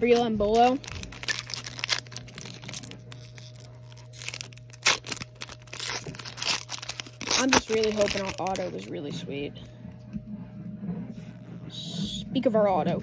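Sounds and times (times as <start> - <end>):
foil wrapper tearing and crinkling: 0.0 - 8.9.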